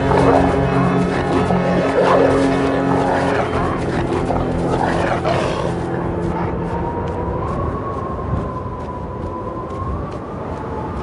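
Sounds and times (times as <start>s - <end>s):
dogs snarling and growling: 0.0s - 6.6s.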